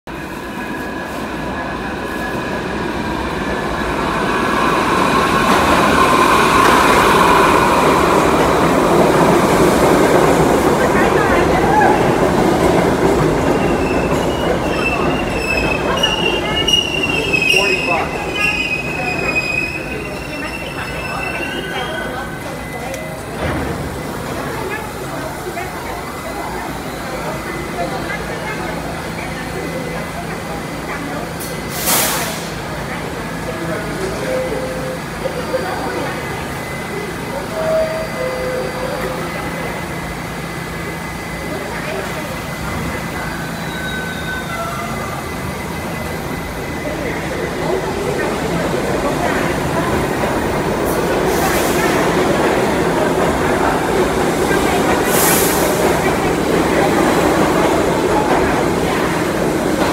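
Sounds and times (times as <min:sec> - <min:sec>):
subway train wheels rumbling: 0:00.0 - 0:59.9
train wheel squeal: 0:13.6 - 0:23.2, 0:34.2 - 0:39.8, 0:41.4 - 0:47.8.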